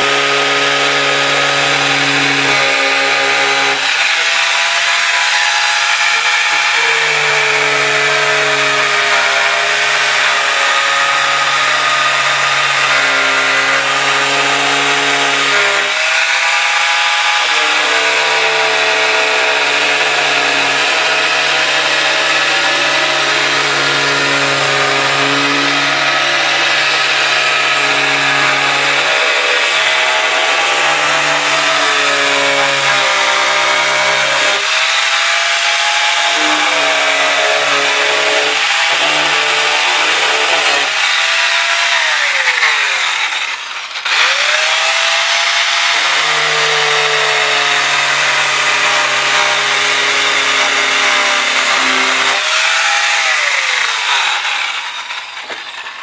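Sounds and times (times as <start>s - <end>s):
angle grinder cutting metal: 0.0s - 56.0s.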